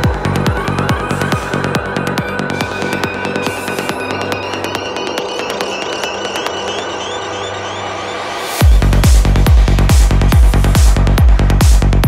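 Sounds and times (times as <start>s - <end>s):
held synth tones: 2.0s - 8.8s.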